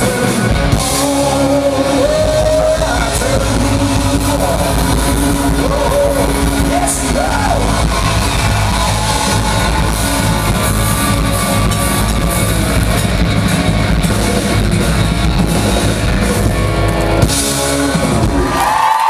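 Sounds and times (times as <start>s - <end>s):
electric guitar: 0.0s - 19.0s
live pop-rock band: 0.0s - 19.0s.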